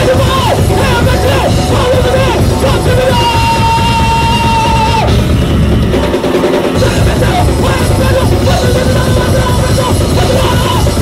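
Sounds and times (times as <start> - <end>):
punk band playing live: 0.0 - 11.0.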